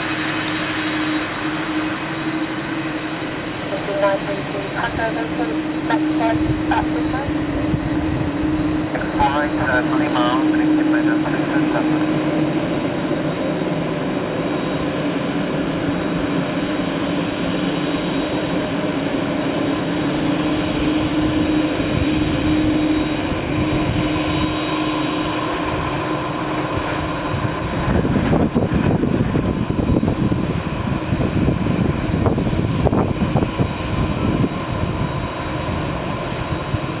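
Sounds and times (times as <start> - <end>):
jet engines idling: 0.0 - 37.0.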